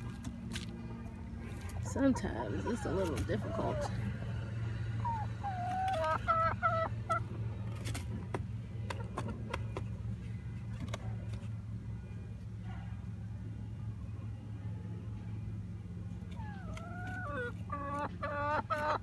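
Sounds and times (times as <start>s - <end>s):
steady low hum: 0.0s - 19.0s
hen clucking: 1.8s - 7.4s, 16.3s - 19.0s.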